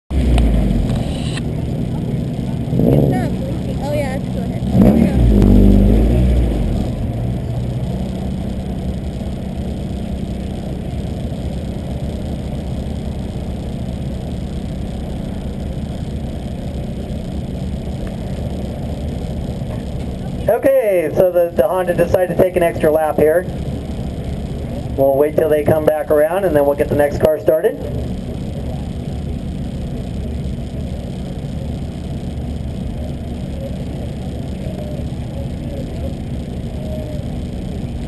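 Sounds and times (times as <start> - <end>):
car engine idling: 0.1 - 38.0
short low rumbles: 0.1 - 38.0
indistinct voices: 15.1 - 38.0.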